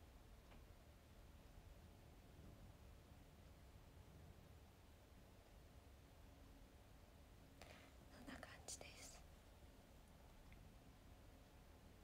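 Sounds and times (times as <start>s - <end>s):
woman whispering: 8.1s - 9.3s.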